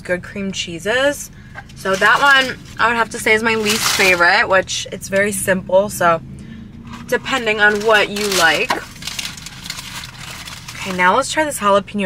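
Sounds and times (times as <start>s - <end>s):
paper wrapping crinkling: 1.9s - 4.2s, 6.9s - 11.0s.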